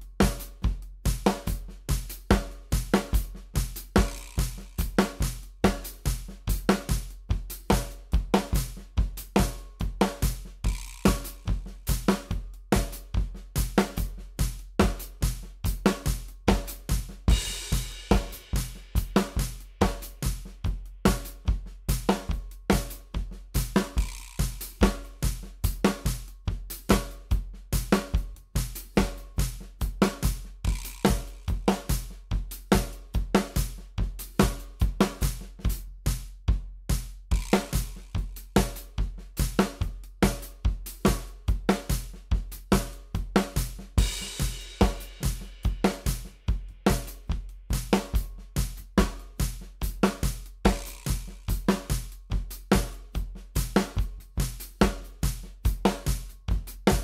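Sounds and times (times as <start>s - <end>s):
drum kit groove: 0.0s - 57.0s.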